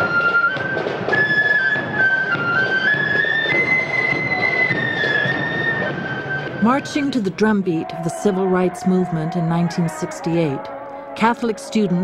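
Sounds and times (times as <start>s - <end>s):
marching flute band playing: 0.0s - 11.9s.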